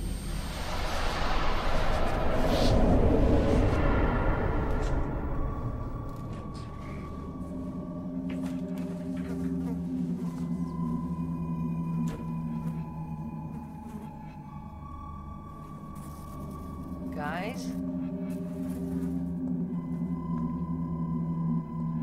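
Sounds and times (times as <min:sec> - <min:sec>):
dark rumble and hiss: 0:00.0 - 0:22.0
sustained ringing tones: 0:00.0 - 0:22.0.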